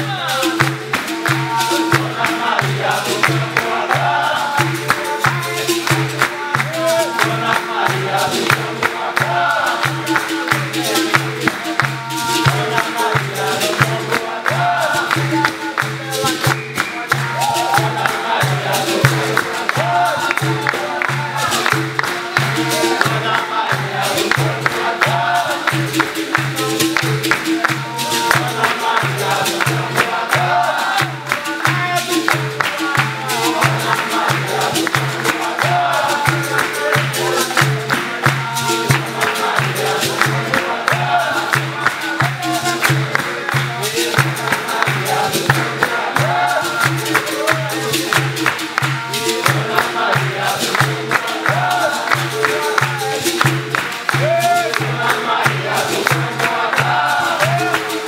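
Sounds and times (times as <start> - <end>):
group call-and-response singing: 0.0 - 58.0
people clapping along: 0.0 - 58.0
percussion playing steady beat: 0.0 - 58.0.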